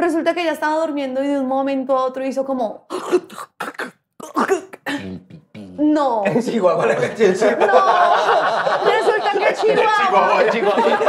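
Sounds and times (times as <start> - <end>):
woman making sputtering throat noises: 2.9 - 6.0.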